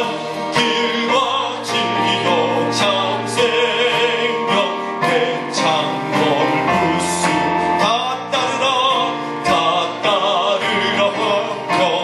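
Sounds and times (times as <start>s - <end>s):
instrumental accompaniment: 0.0s - 12.0s
man singing operatic gospel: 0.0s - 12.0s.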